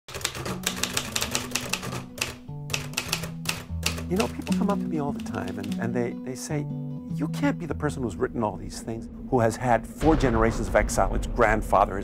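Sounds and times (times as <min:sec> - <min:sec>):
typewriter key strikes: 0:00.1 - 0:05.8
background music with low notes: 0:00.1 - 0:12.0.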